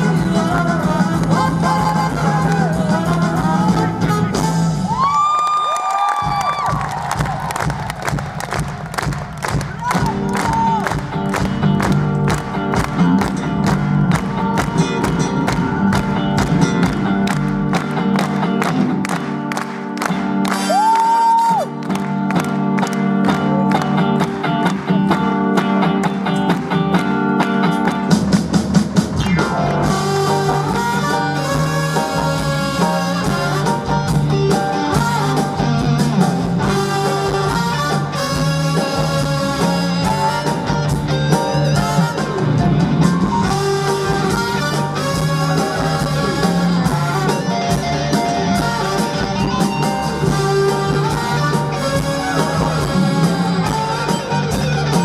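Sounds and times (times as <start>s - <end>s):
rock band playing: 0.0s - 5.3s, 6.0s - 55.0s
drum beat: 6.1s - 20.9s
electric guitar: 9.7s - 55.0s.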